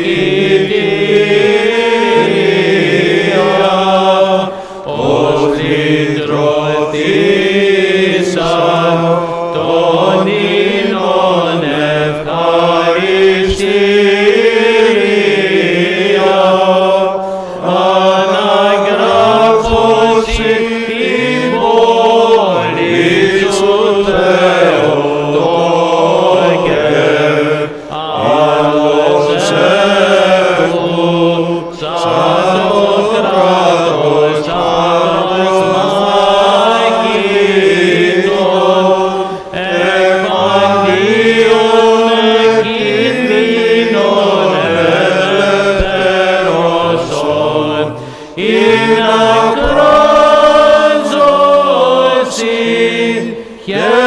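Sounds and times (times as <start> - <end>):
men singing chant: 0.0 - 54.0.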